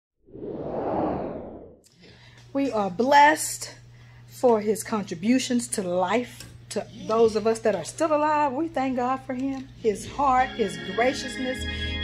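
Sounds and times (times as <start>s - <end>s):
whoosh sound effect: 0.3s - 1.8s.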